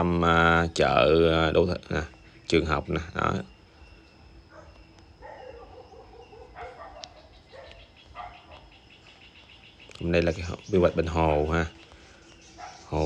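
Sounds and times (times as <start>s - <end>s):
faint animal calls: 2.0s - 13.0s.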